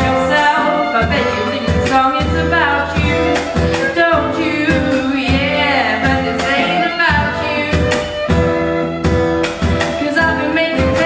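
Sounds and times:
person singing: 0.0s - 8.2s, 9.9s - 11.0s
drum kit beat: 0.0s - 11.0s
fiddle: 0.0s - 11.0s
strummed acoustic guitar: 0.0s - 11.0s.

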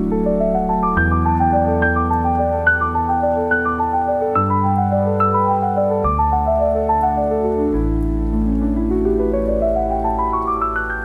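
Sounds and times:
slow piano arpeggio: 0.0s - 11.0s
steady rain: 0.0s - 11.0s.

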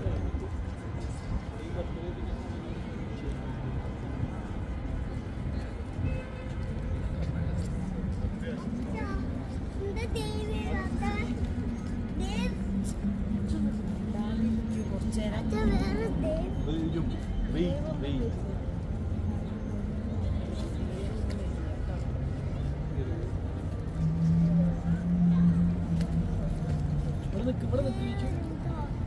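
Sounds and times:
low traffic rumble: 0.0s - 29.0s
people's voices: 0.0s - 29.0s.

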